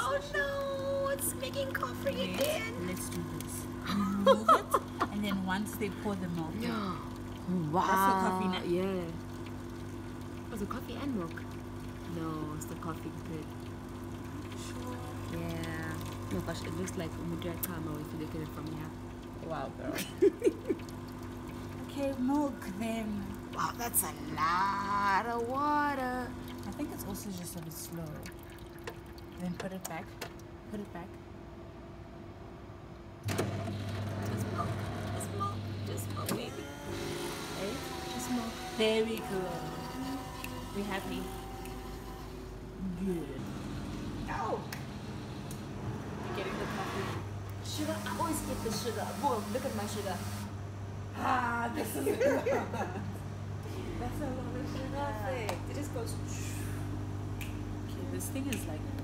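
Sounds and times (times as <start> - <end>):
liquid pouring into cup: 0.0 - 30.5
coffee machine pump hum: 0.0 - 59.0.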